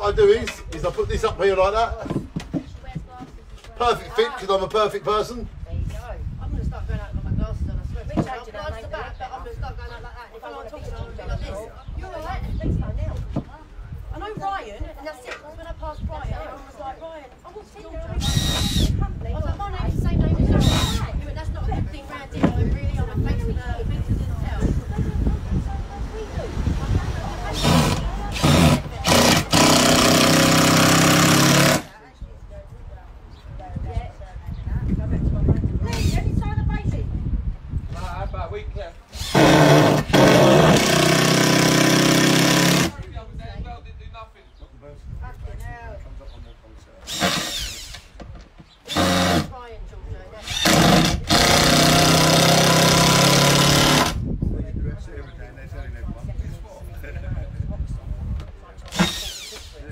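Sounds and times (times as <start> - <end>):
cordless drill whining: 18.2 - 19.0, 20.6 - 21.1, 27.5 - 31.9, 39.2 - 42.9, 47.0 - 48.1, 48.9 - 49.5, 50.4 - 54.2, 58.9 - 59.8.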